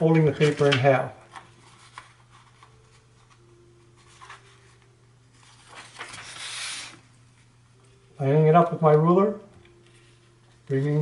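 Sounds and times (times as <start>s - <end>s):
paper rustling: 0.0s - 7.0s.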